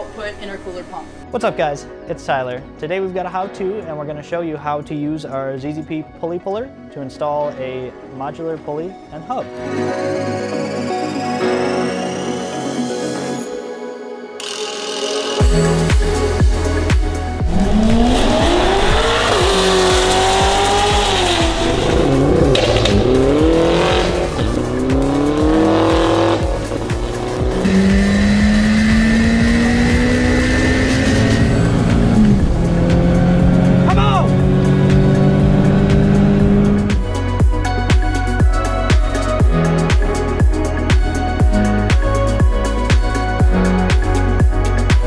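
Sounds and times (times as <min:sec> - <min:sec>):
music with heavy beat: 0:14.4 - 0:45.0
racing car engines revving: 0:17.4 - 0:37.1.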